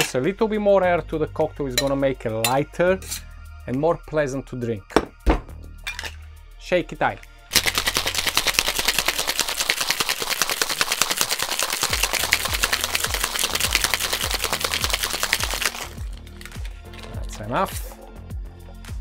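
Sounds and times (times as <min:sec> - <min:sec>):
ice rattling in cocktail shaker: 0:07.5 - 0:17.4.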